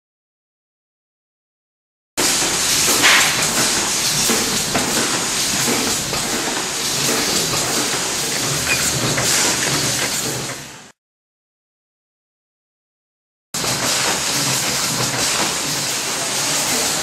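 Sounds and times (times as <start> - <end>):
filling machine hissing: 2.2 - 10.9, 13.6 - 17.0.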